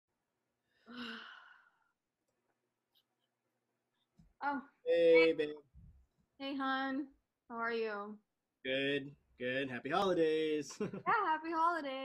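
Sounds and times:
woman sighing: 0:00.9 - 0:01.9.

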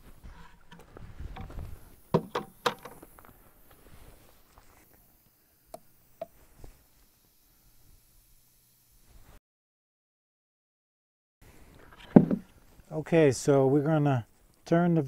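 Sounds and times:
sharp knocks: 0:02.1 - 0:03.0, 0:12.1 - 0:12.4.

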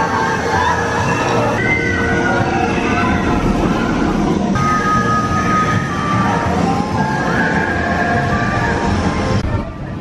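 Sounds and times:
roller coaster rumbling on track: 0:00.0 - 0:10.0.

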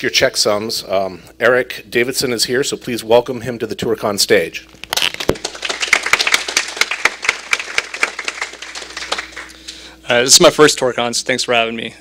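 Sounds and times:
audience applauding: 0:05.1 - 0:09.6.

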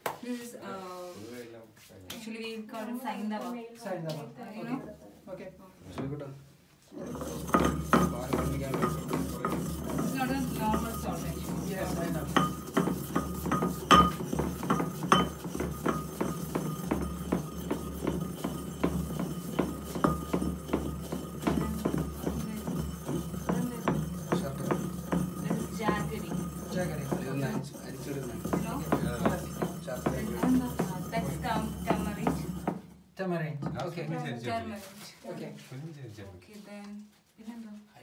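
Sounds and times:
pestle pounding in ceramic mortar: 0:07.0 - 0:33.0.

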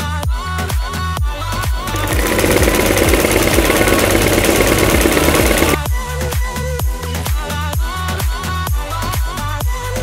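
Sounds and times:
sewing machine stitching: 0:01.8 - 0:05.9.

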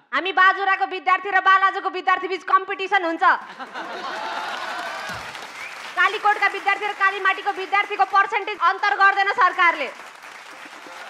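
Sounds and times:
audience applauding: 0:03.5 - 0:11.0.

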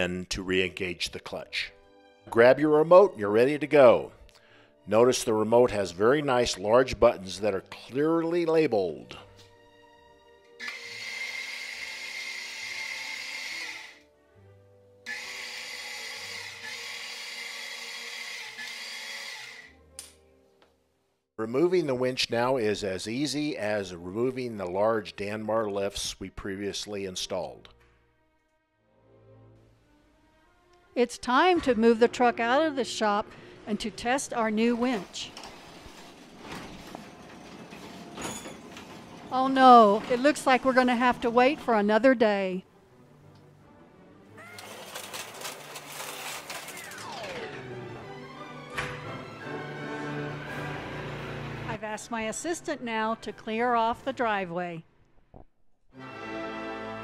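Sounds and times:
electric winch motor whine: 0:10.6 - 0:14.1, 0:15.0 - 0:19.8, 0:34.5 - 0:41.6, 0:44.6 - 0:51.8
garage door rolling up: 0:34.5 - 0:41.9, 0:44.6 - 0:49.5.

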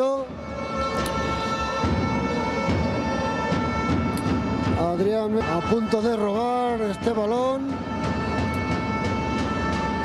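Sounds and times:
crowd noise: 0:00.0 - 0:10.0
drumming in the stands: 0:00.2 - 0:10.0.

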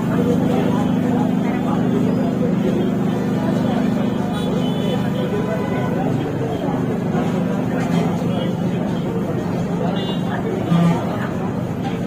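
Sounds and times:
people talking: 0:00.0 - 0:12.0
vehicle engine idling: 0:00.0 - 0:12.0.

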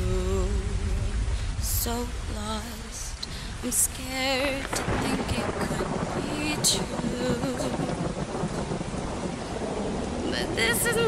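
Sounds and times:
rain hissing: 0:00.0 - 0:11.0
thunder rumble: 0:00.0 - 0:11.0.

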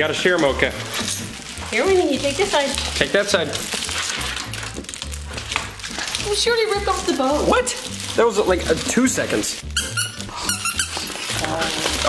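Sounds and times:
background music: 0:00.0 - 0:12.0
dog toy squeaking: 0:09.7 - 0:11.7.

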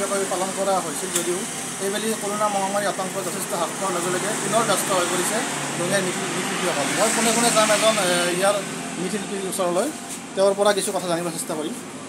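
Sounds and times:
man talking: 0:00.0 - 0:11.8
steady background noise: 0:00.0 - 0:12.0.

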